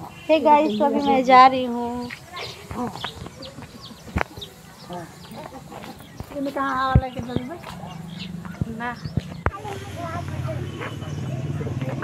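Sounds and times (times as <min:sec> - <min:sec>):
animal sounds: 0:00.0 - 0:12.0
faint distant voices: 0:00.0 - 0:12.0.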